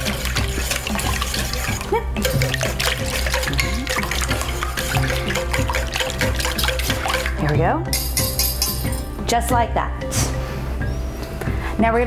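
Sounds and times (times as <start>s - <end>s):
whisk beating liquid in bowl: 0.0s - 7.5s
background music: 0.0s - 12.0s.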